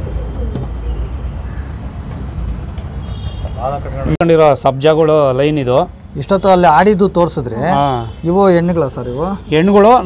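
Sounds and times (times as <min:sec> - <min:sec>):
pigeon cooing: 0:00.0 - 0:01.8.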